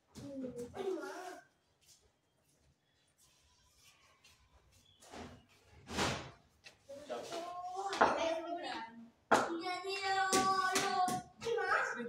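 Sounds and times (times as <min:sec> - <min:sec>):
sharp claps or knocks: 0:07.9 - 0:11.6.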